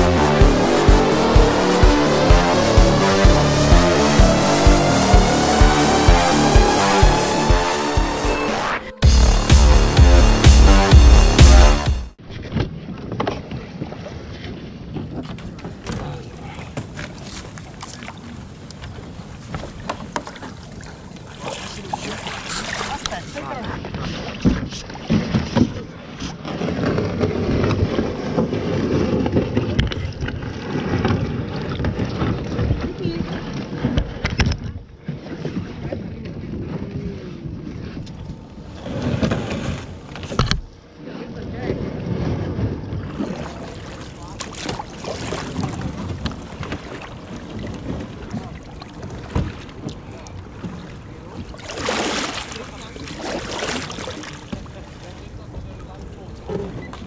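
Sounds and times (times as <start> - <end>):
knocks and rustles in kayak: 12.2 - 57.0
wind rumbling on microphone: 22.5 - 40.5.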